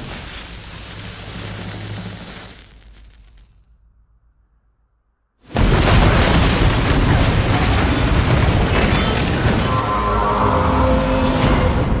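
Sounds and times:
loud explosion with rumble: 5.5 - 9.8.

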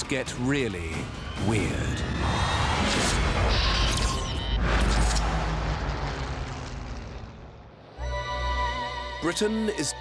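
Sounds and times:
rushing rumbling noise effect: 4.5 - 8.0.

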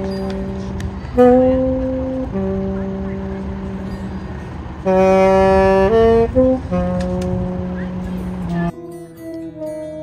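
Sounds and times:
tenor saxophone playing long notes: 0.0 - 4.2, 4.8 - 10.0
low rumble of traffic: 0.0 - 10.0.

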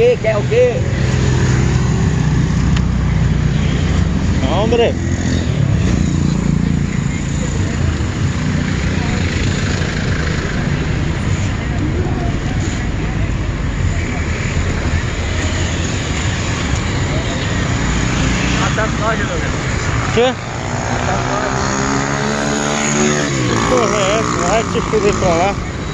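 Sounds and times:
car engines in traffic: 0.0 - 25.9
motorcycles passing: 0.0 - 25.9
people's voices: 0.0 - 25.9.

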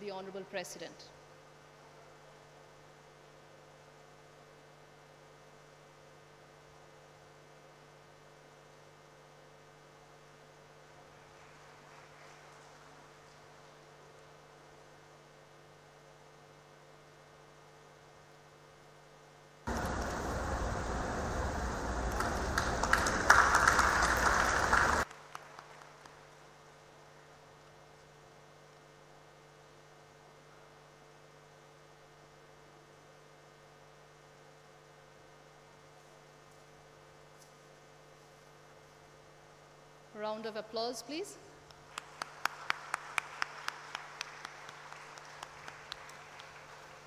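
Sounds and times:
low mains hum: 0.0 - 47.0
audience applauding: 11.2 - 12.9, 19.7 - 26.3, 41.9 - 47.0.

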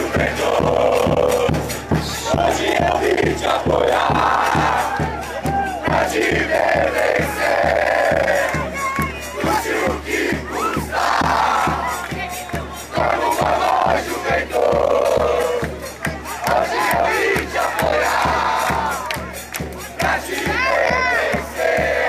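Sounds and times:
football supporters chanting: 0.0 - 22.0
steady drumbeat: 0.0 - 22.0.

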